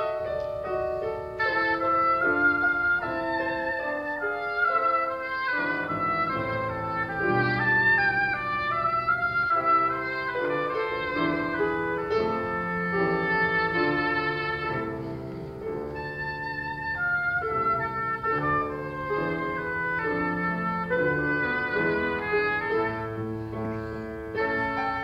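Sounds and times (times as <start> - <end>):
grand piano accompaniment: 0.0 - 25.0
oboe melody: 0.0 - 25.0.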